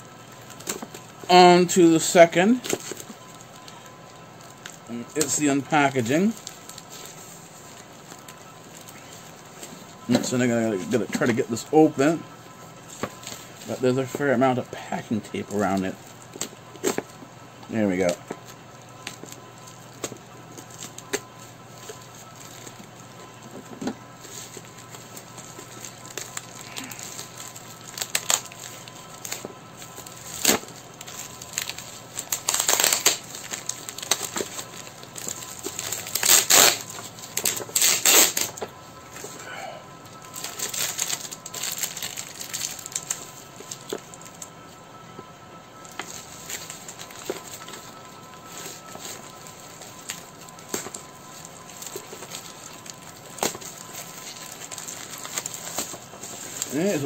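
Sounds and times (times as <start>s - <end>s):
crackles and clicks: 2.6s - 11.3s, 15.6s - 57.0s
tape and cardboard tearing: 23.8s - 38.7s, 48.5s - 57.0s.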